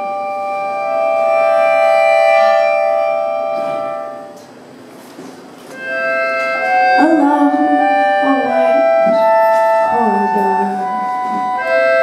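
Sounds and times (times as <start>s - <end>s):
accordion sustained chord: 0.0s - 12.0s.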